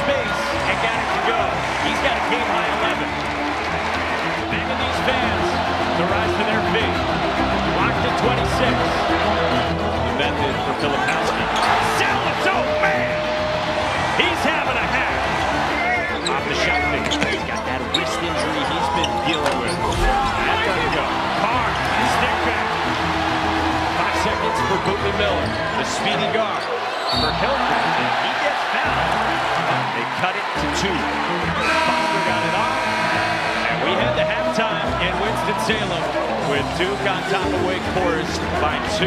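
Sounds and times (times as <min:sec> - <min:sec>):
arena voices: 0:00.0 - 0:39.0
background music: 0:00.0 - 0:39.0.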